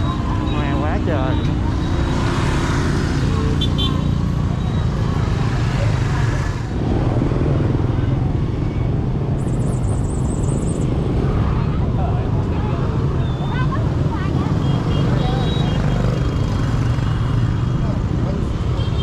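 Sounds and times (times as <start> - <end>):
motorbikes and scooters passing: 0.0 - 19.0.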